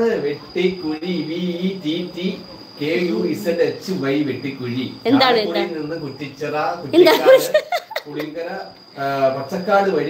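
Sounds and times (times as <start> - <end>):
woman giggling: 7.0 - 8.3.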